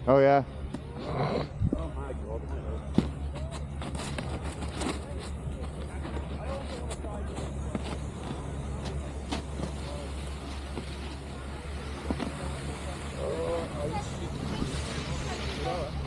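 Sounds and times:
faint voices: 0.3 - 16.0
wind rumbling on microphone: 1.4 - 2.0
snowboard riding over packed snow: 3.0 - 16.0.

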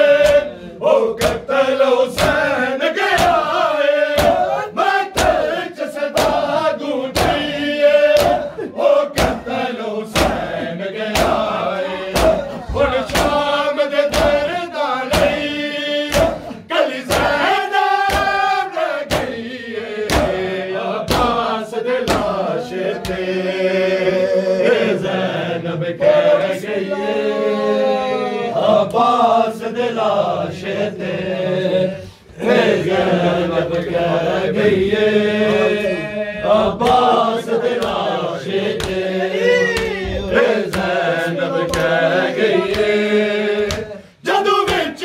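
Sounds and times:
men chanting in a group: 0.0 - 45.0
hand slaps on chest: 0.2 - 0.5, 1.2 - 1.5, 2.2 - 2.5, 3.2 - 3.5, 4.1 - 4.5, 5.1 - 5.5, 6.2 - 6.5, 7.1 - 7.5, 8.1 - 8.5, 9.2 - 9.4, 10.1 - 10.5, 11.1 - 11.5, 12.1 - 13.4, 14.1 - 14.5, 15.1 - 15.5, 16.1 - 16.5, 17.1 - 17.4, 18.0 - 18.5, 19.1 - 19.4, 20.1 - 20.4, 21.1 - 21.4, 22.0 - 22.4, 36.8 - 37.1, 38.8 - 39.0, 39.7 - 41.0, 41.7 - 42.0, 43.6 - 43.9.

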